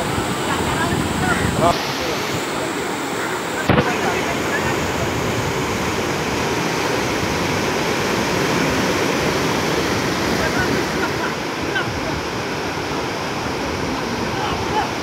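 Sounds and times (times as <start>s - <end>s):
faint voices: 0.0s - 7.1s, 10.2s - 15.0s
waves breaking in shallows: 0.0s - 15.0s.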